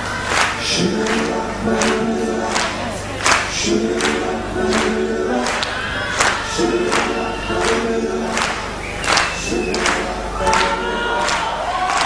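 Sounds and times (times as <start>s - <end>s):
backing singers holding notes: 0.0s - 12.0s.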